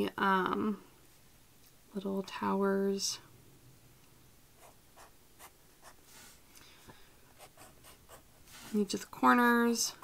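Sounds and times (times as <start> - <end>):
pen scratching on paper: 7.4 - 8.8.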